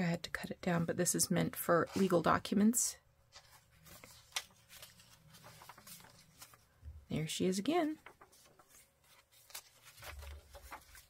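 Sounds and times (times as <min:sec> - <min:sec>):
paper pages being turned: 0:03.3 - 0:06.8, 0:07.8 - 0:11.0.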